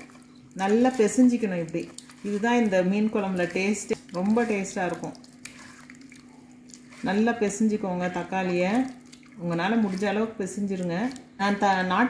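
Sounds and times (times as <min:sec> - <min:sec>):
squelching and sloshing liquid: 0:00.0 - 0:12.0
woman speaking: 0:00.6 - 0:05.2, 0:07.0 - 0:12.0.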